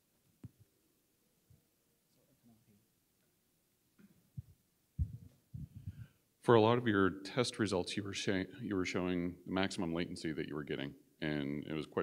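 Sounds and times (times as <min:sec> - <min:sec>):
microphone handling thuds: 0:04.4 - 0:06.1.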